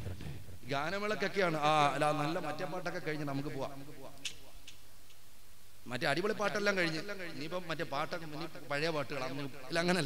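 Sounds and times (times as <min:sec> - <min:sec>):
man speaking into a microphone: 0:00.0 - 0:04.3, 0:05.8 - 0:10.0.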